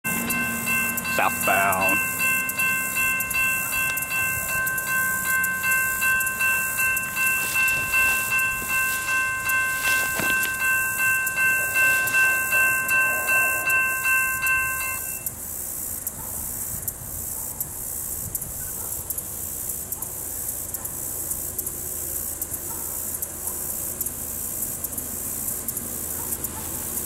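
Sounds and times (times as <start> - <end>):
railroad crossing bell ringing: 0.0 - 16.0.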